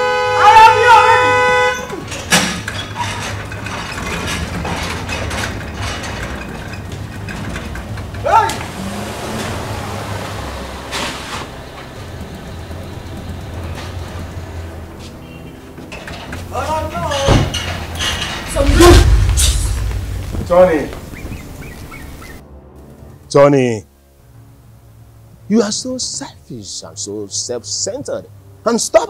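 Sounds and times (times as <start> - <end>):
car horn blast: 0.0 - 2.2
vehicle running at low speed: 6.7 - 15.8, 18.7 - 22.4.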